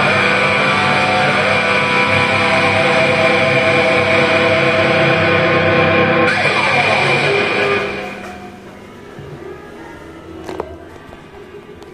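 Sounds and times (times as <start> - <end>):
rock electric guitar music: 0.0 - 8.6.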